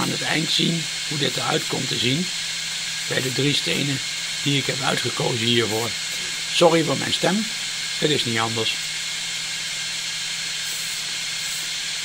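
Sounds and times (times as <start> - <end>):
laser engraver fan hiss: 0.0 - 12.0.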